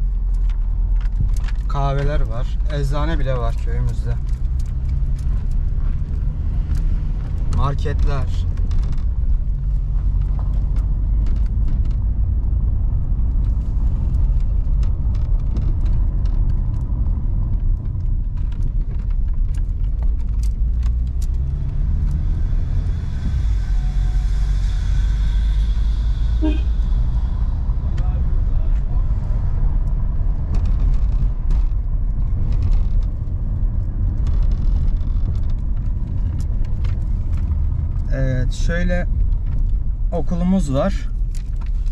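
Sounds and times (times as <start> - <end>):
car driving on dirt road: 0.0 - 41.9.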